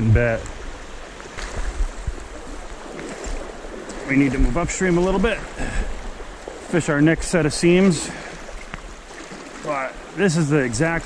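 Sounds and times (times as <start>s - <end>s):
creek water rushing: 0.0s - 11.0s.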